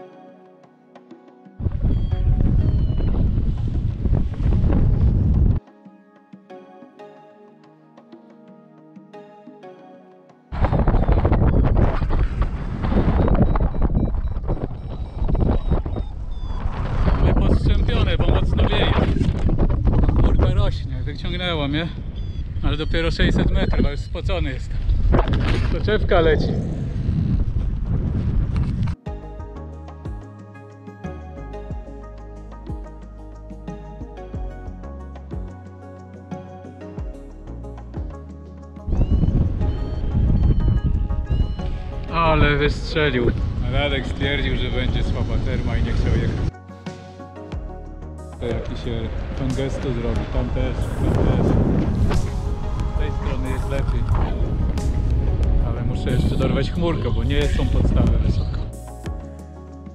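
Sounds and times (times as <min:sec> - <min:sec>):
wind buffeting microphone: 0:01.6 - 0:05.6, 0:10.5 - 0:29.0, 0:38.9 - 0:46.5, 0:48.5 - 0:58.8
short high-pitched beeps: 0:13.1 - 0:16.6.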